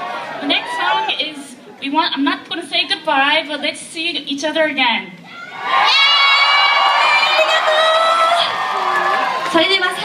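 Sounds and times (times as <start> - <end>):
concert audience cheering: 0.0 - 1.2, 5.3 - 10.0.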